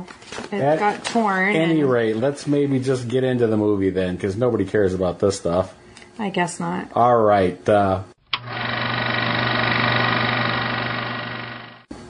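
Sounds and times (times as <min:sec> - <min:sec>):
electronic buzzing drone: 0:08.3 - 0:11.9.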